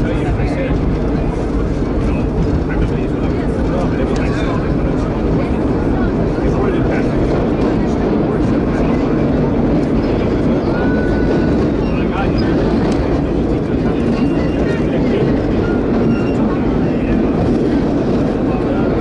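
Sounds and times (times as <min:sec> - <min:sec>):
subway train rumbling in tunnel: 0:00.0 - 0:19.0.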